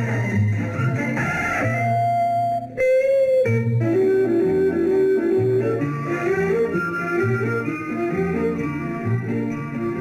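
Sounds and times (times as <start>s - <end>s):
film song music: 1.9s - 10.0s.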